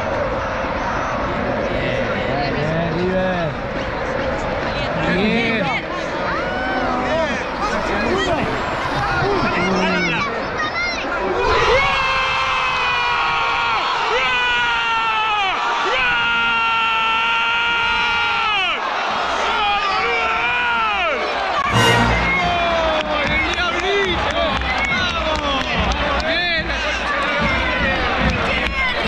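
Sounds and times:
crowd cheering: 0.0s - 29.0s.

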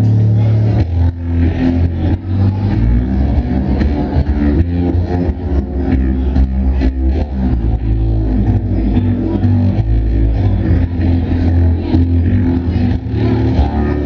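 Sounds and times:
deep driving bass line: 0.0s - 14.0s.

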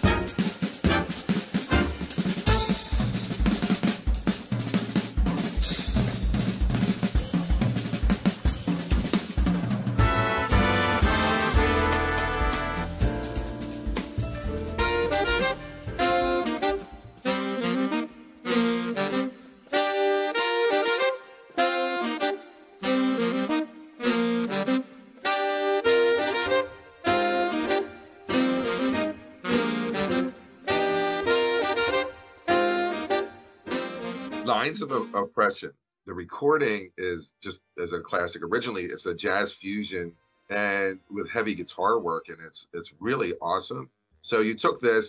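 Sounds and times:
jazz drum solo: 0.0s - 20.9s
big band horn section: 0.0s - 35.2s.

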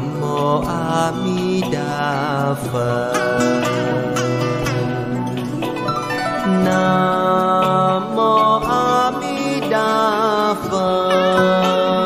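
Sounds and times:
instrumental music: 0.0s - 12.0s
person chanting melodically: 6.0s - 12.0s.

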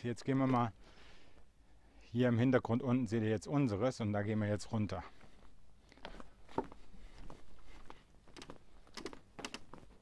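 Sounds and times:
footsteps on wooden steps: 6.0s - 10.0s.

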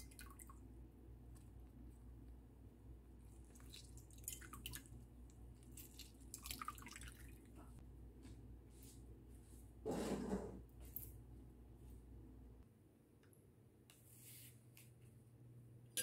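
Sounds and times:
liquid dripping and splashing: 3.4s - 7.8s
liquid pouring: 5.6s - 7.5s.

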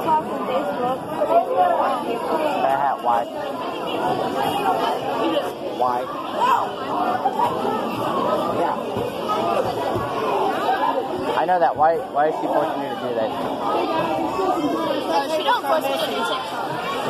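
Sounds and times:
people talking at once: 0.0s - 17.0s.

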